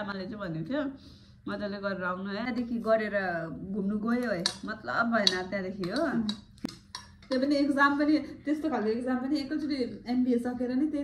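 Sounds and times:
cutlery ticking on dish: 0:04.4 - 0:07.6
metal spoon clinking on plate: 0:04.4 - 0:07.6.

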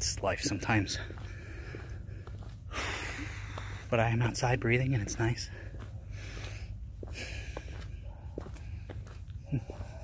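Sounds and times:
steady low rumble: 0:00.0 - 0:10.0
man breathing deeply: 0:01.1 - 0:03.9, 0:05.5 - 0:08.0.

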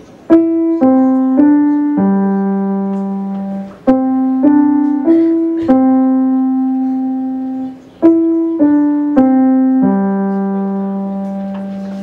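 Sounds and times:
digital piano sustained note: 0:00.0 - 0:12.0.

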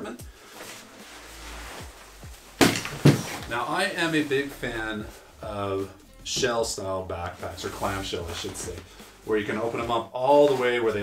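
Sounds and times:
backpack straps and fabric rustling: 0:00.3 - 0:04.4
backpack thumping on wooden table: 0:02.6 - 0:03.5.

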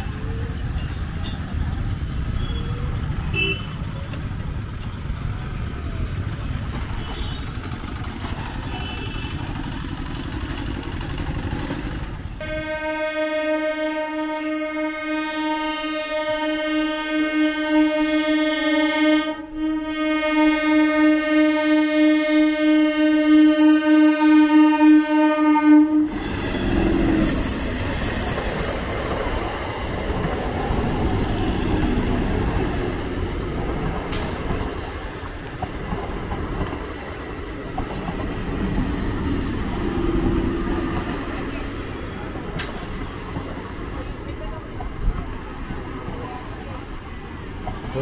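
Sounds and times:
train wheels rumbling on track: 0:00.0 - 0:48.0
train horn: 0:12.4 - 0:28.2.

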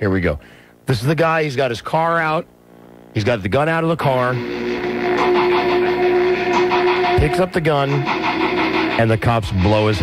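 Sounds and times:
long held synth note with pulse: 0:04.2 - 0:09.0.

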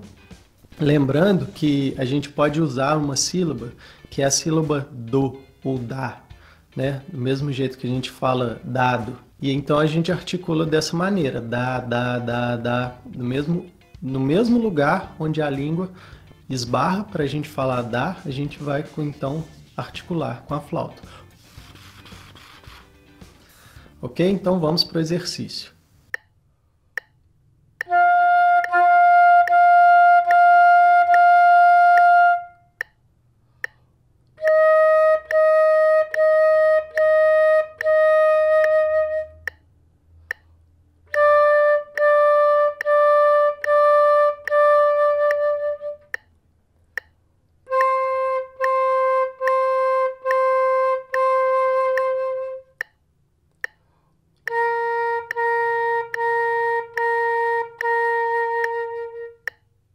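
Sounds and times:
flute repeated detached notes: 0:11.2 - 0:13.7, 0:16.6 - 0:19.7, 0:27.0 - 0:46.4, 0:47.0 - 0:59.9.

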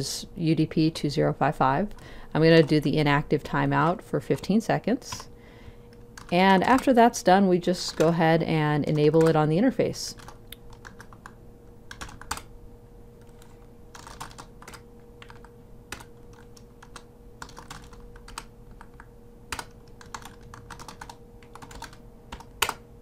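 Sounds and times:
typing on computer keyboard: 0:06.2 - 0:06.9, 0:10.1 - 0:12.5, 0:13.2 - 0:22.8.

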